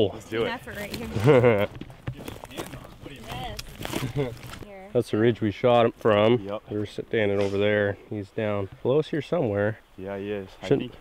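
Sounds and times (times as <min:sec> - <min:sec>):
footsteps through brush and twigs: 0:00.3 - 0:04.8.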